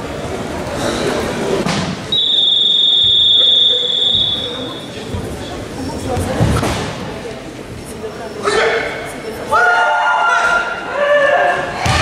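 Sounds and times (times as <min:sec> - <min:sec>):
murmur of large hall: 0:00.0 - 0:12.0.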